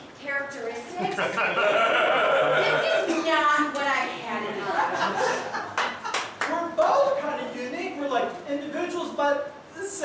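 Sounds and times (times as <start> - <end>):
people talking: 0.2 - 5.3
hand claps: 5.3 - 7.2.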